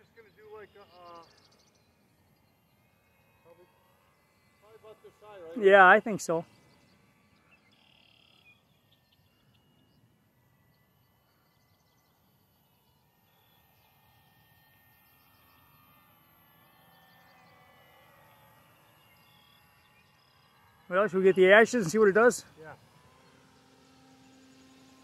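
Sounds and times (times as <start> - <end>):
faint bird chirps: 6.5 - 14.0.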